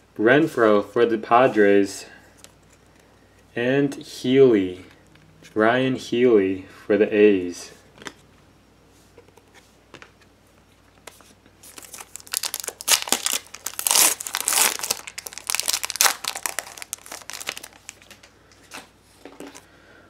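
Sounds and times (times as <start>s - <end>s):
foil wrapper tearing and crinkling: 11.6s - 18.2s.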